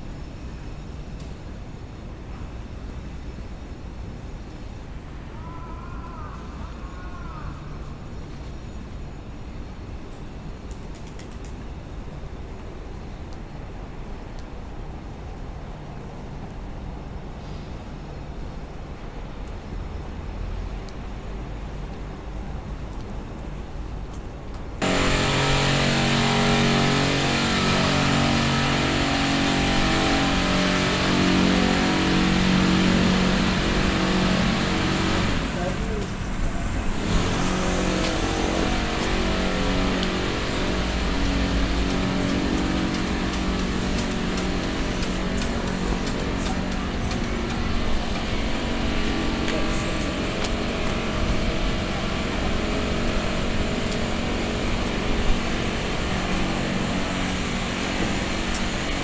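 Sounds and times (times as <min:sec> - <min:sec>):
vehicle engines running: 0:24.8 - 0:59.0.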